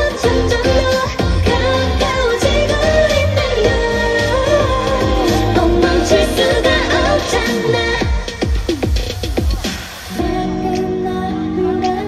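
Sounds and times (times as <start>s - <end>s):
dance-pop song with female vocals: 0.0s - 12.0s.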